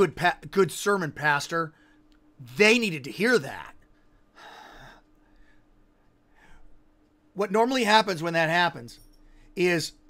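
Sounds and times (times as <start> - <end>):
man's sharp intake of breath: 4.3 - 5.7.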